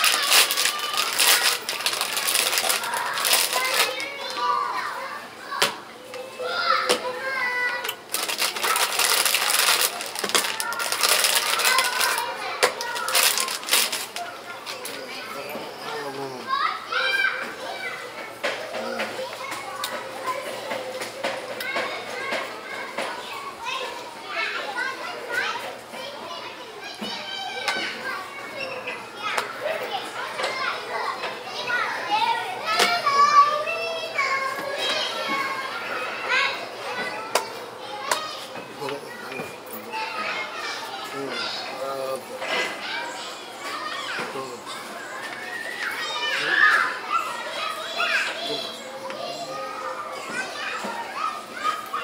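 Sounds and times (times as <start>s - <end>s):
plastic bag crinkling: 0.0s - 4.1s, 8.1s - 14.9s
children calling and chattering: 0.0s - 52.0s.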